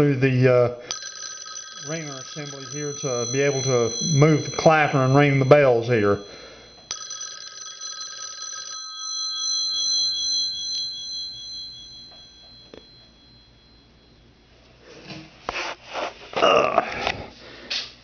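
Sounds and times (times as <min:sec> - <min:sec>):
phone bells ringing: 0:00.8 - 0:14.5.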